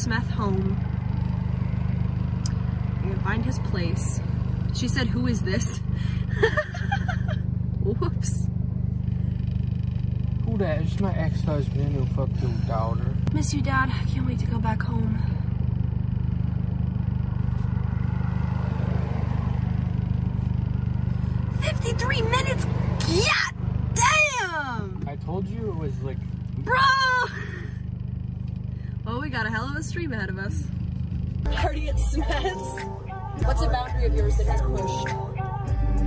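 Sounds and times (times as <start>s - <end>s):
car engine rumble inside cabin: 0.0s - 36.0s.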